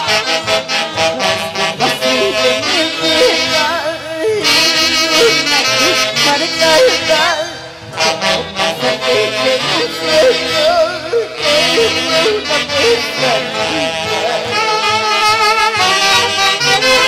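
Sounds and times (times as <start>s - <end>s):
saxophones with wide vibrato: 0.0s - 17.0s.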